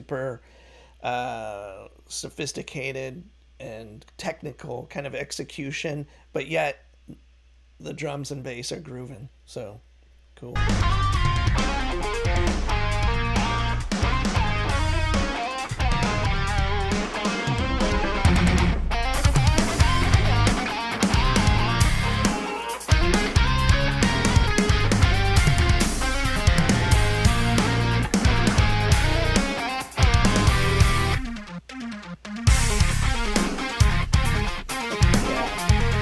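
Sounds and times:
heavy metal band playing: 0:10.6 - 0:31.6, 0:32.4 - 0:36.0.

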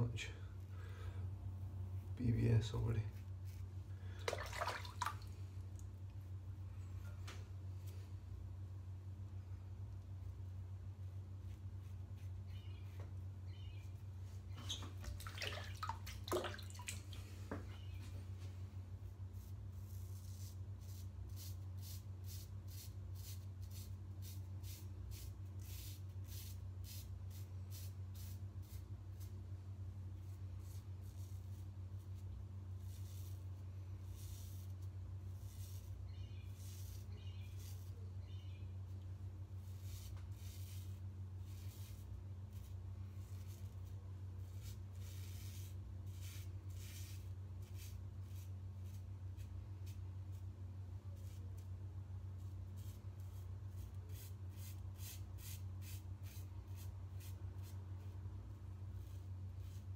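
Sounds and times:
steady low hum: 0:00.0 - 0:59.9.

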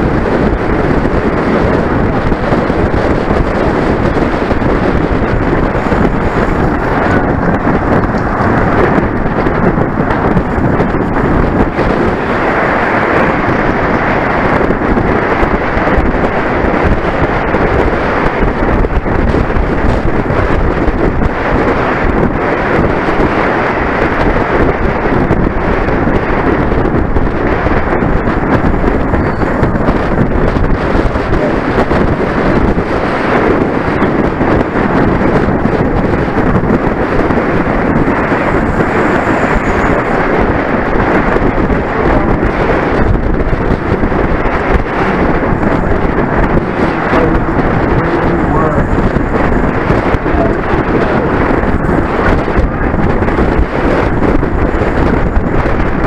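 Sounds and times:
wind buffeting microphone: 0:00.0 - 0:56.0.

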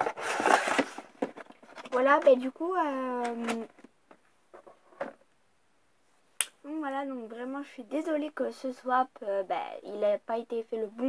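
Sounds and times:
small objects handled: 0:00.0 - 0:02.4.

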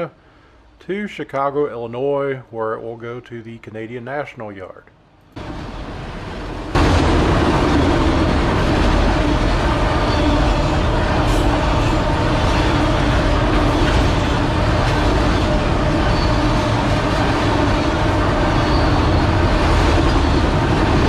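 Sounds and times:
train wheels rolling on rail: 0:05.4 - 0:21.0.

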